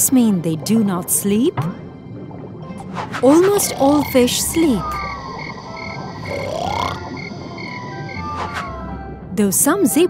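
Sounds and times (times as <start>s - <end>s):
light background music: 0.0s - 10.0s
cartoon croaking snore: 6.2s - 7.3s.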